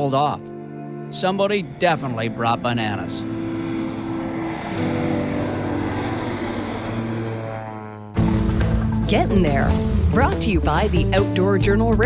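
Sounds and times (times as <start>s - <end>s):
propeller plane engine droning: 0.0s - 12.0s.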